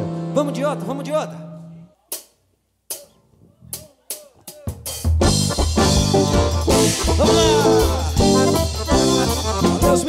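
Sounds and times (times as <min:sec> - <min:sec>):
drum hits and fill: 0:04.5 - 0:10.0.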